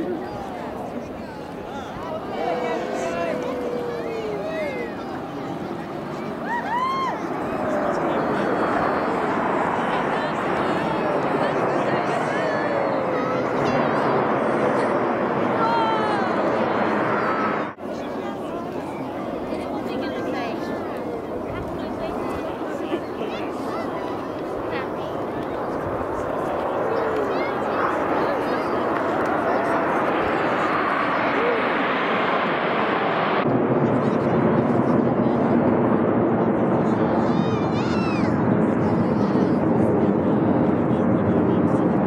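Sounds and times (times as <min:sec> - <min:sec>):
jet roar: 0:00.0 - 0:42.0
people talking: 0:00.0 - 0:42.0
spectators chattering: 0:00.0 - 0:42.0.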